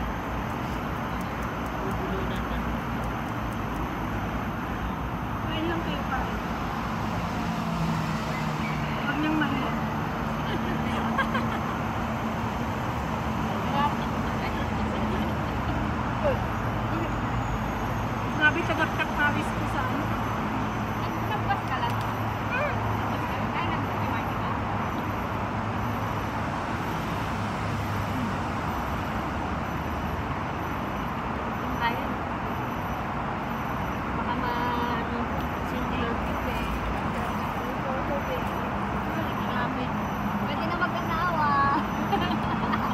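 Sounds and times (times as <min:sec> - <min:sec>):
city traffic noise: 0:00.0 - 0:42.9.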